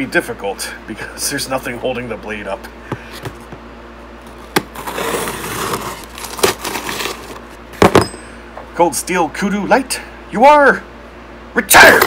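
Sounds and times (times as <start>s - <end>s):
knife slitting packing tape: 4.5s - 7.4s.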